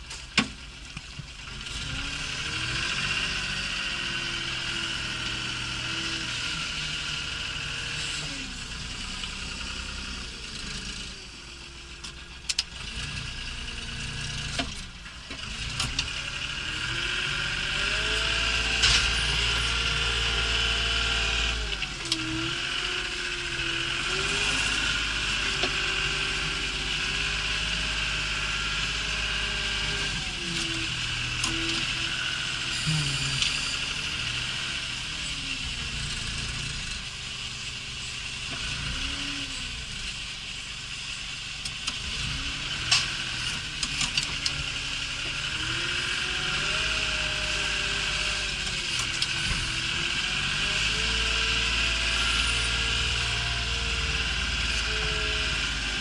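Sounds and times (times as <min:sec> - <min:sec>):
diesel engine of a front loader: 0:00.0 - 0:56.0.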